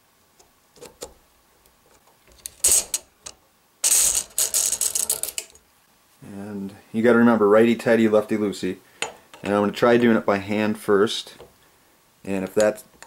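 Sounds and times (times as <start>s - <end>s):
spring scraping and rattling in tube: 2.3s - 5.6s.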